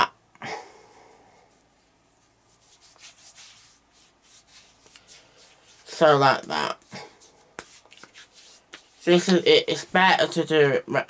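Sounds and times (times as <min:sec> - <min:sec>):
hand rubbing cream into skin: 0:01.4 - 0:10.0.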